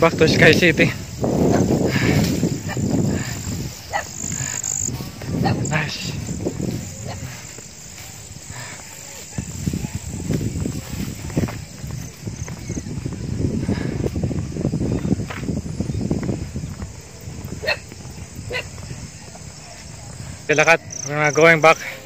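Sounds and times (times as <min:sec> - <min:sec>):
low rumbling microphone noise: 0:00.0 - 0:21.1
insects chirring faintly: 0:00.0 - 0:22.0.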